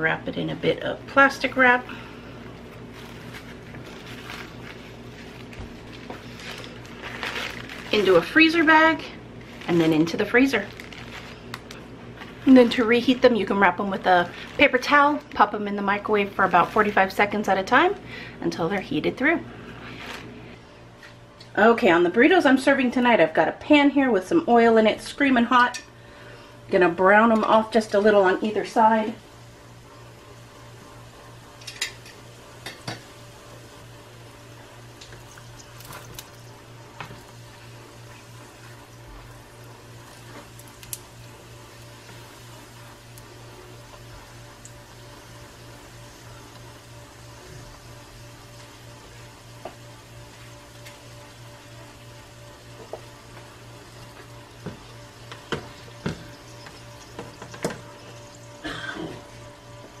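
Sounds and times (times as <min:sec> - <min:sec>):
food sizzling in hot oil: 0:27.7 - 1:00.0.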